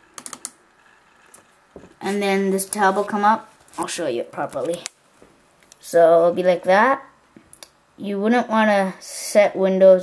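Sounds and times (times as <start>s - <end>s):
computer mouse clicking: 0.2s - 0.6s.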